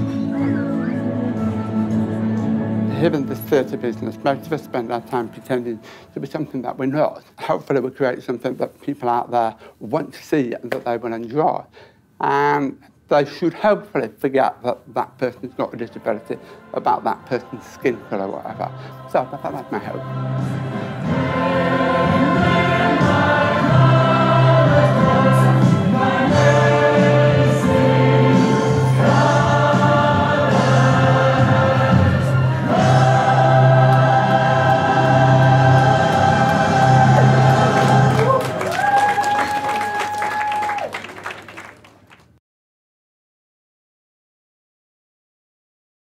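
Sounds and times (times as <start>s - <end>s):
choir singing: 0.0s - 5.5s, 15.5s - 38.7s.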